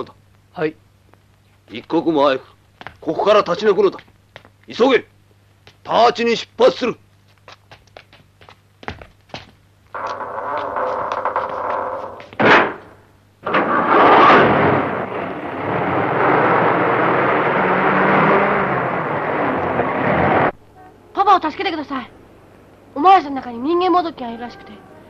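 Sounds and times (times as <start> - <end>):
cargo truck engine and road rumble: 11.8 - 20.6.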